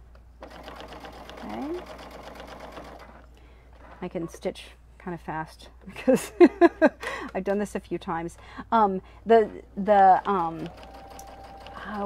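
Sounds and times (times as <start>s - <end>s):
sewing machine running fast: 0.5s - 3.1s, 10.4s - 12.0s.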